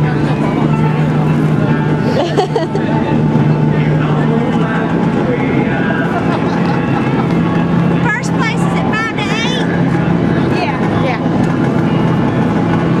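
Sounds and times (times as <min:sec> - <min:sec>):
steady engine drone: 0:00.0 - 0:13.0.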